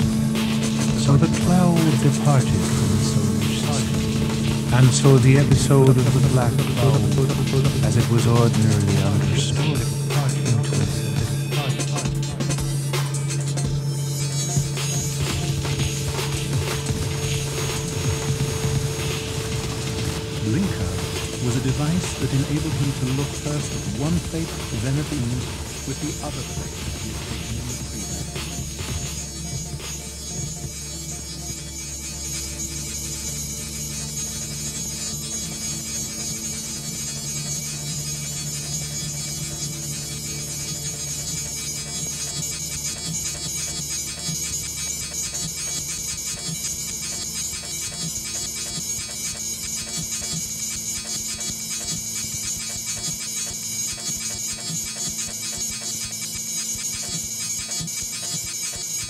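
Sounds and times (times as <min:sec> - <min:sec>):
deep bass drone: 0:00.0 - 0:52.2
electronic synthesizer drones: 0:00.0 - 0:59.0.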